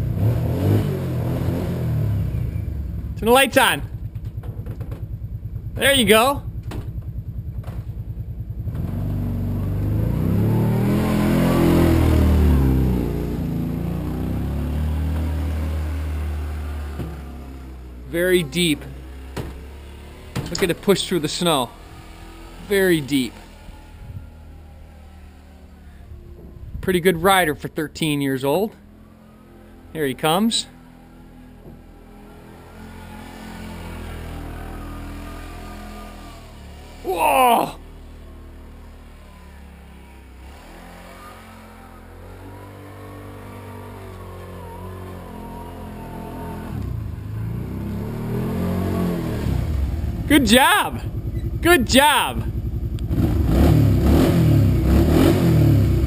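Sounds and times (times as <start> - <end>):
atv engine running: 0.0 - 56.0.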